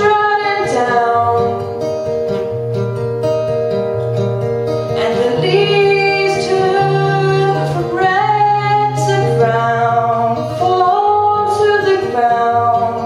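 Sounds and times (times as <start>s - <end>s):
acoustic guitar chords: 0.0s - 13.0s
woman singing long notes: 5.0s - 13.0s.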